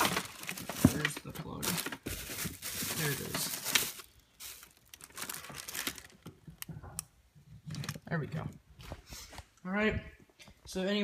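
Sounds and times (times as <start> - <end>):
rustling handling noise: 0.0 - 9.5.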